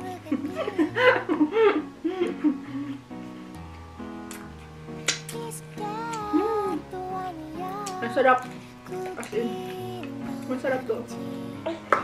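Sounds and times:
plucked guitar music: 3.5s - 12.0s.

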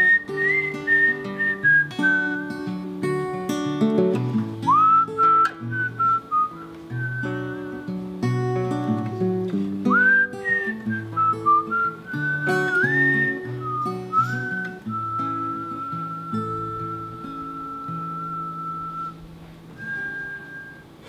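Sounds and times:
man whistling a melody: 0.0s - 3.2s, 4.6s - 21.0s
strummed acoustic guitar: 0.0s - 21.0s.

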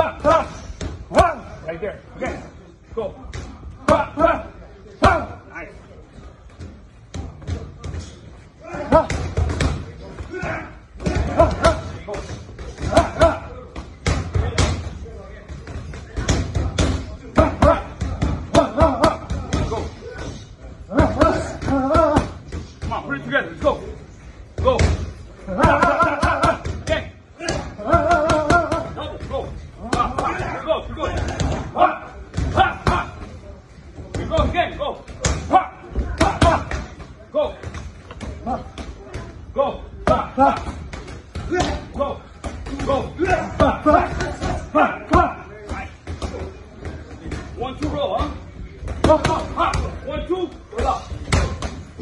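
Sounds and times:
boxing gloves hitting mitts: 24.7s - 31.7s.

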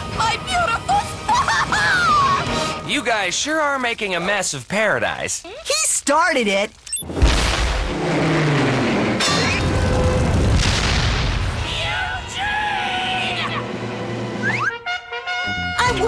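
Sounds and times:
background music: 0.0s - 3.8s, 11.6s - 16.0s
cartoon explosion blast: 7.1s - 11.8s
falling whistle: 14.4s - 14.9s.

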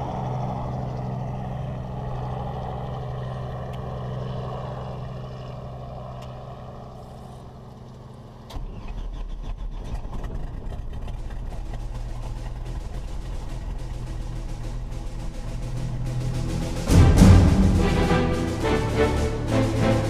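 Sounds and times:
aircraft engine drone: 0.0s - 20.0s
rough piston engine in cockpit: 8.5s - 20.0s.

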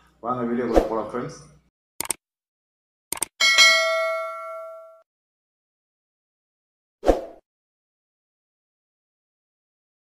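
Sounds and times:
quick double click: 3.1s - 3.3s
bell ding: 3.4s - 5.0s.

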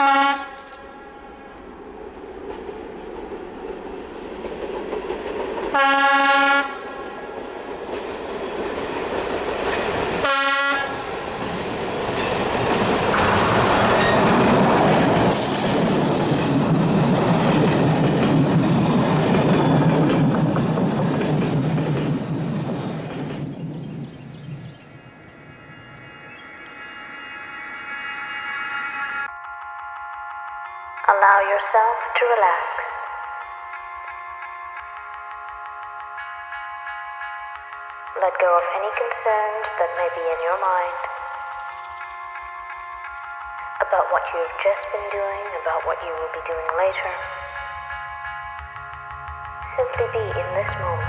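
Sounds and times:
locomotive horn blasts: 0.0s - 1.0s, 5.7s - 7.0s, 10.2s - 11.0s
diesel locomotive engine: 0.0s - 51.0s
train wheels rolling: 1.3s - 31.0s.

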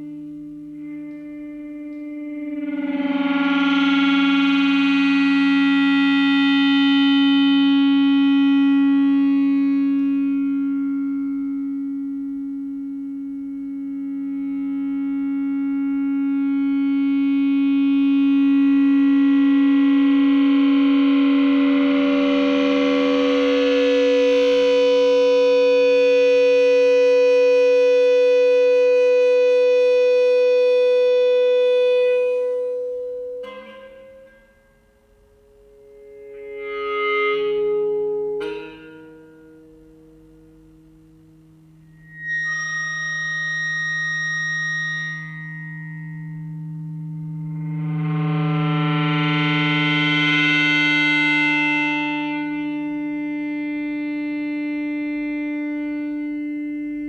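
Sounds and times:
droning electric guitar tone: 0.0s - 57.0s.

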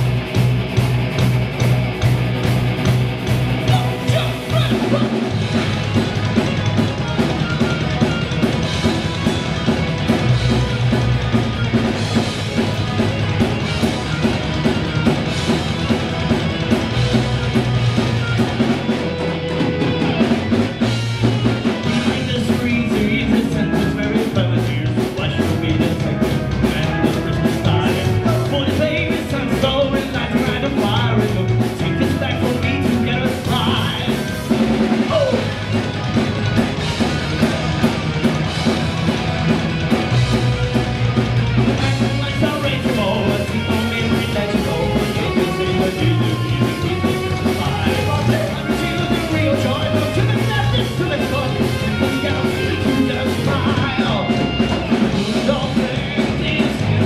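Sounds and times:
hard rock band playing: 0.0s - 57.0s
lead singer singing: 3.6s - 5.3s, 21.6s - 35.7s, 41.7s - 57.0s.

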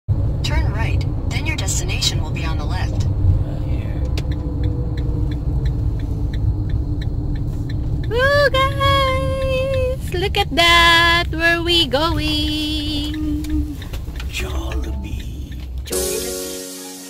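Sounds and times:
road rumble inside a car: 0.1s - 16.0s
light even ticking: 3.7s - 16.0s.

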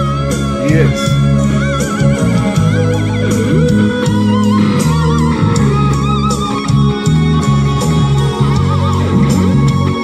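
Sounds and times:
electric guitar lead melody: 0.0s - 10.0s
low bass line: 0.0s - 10.0s.

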